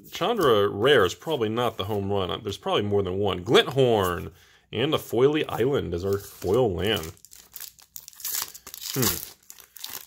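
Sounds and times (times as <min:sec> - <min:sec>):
foil wrapper tearing and crinkling: 0:06.1 - 0:10.0.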